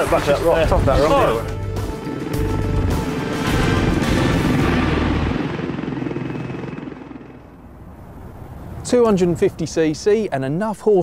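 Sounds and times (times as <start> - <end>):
music: 0.0 - 6.0
helicopter rotor: 0.0 - 8.4.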